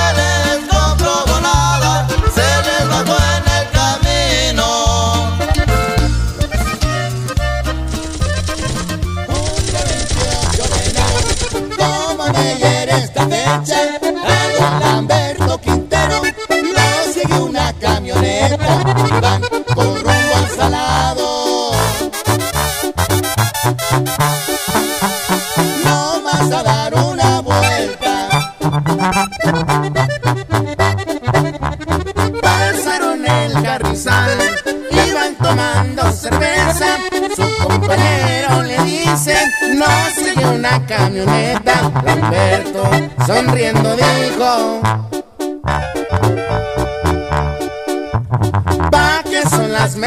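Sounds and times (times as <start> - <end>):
band music with accordion: 0.0 - 50.0
bass line: 0.0 - 50.0
steady beat: 4.9 - 12.0, 41.5 - 49.7.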